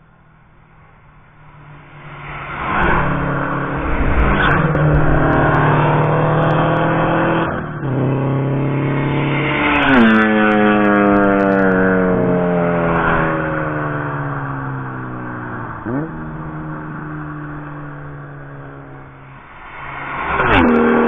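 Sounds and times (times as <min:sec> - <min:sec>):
race cars accelerating past: 0:01.6 - 0:21.0.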